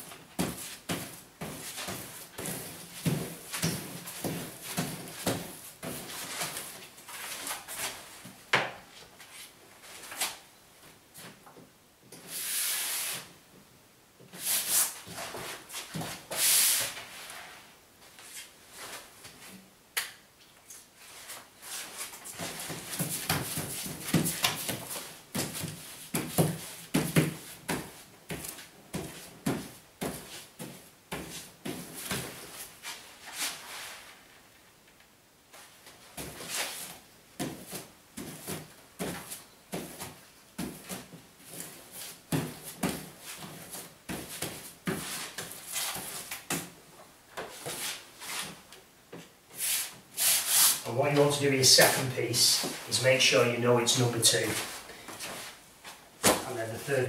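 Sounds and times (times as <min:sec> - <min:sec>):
brush spreading paste on wallpaper: 0:12.3 - 0:13.3, 0:14.3 - 0:18.5, 0:49.6 - 0:50.9.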